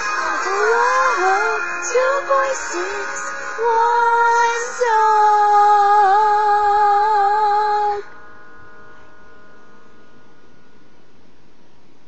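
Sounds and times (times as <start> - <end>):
girl singing long notes: 0.0 - 8.2.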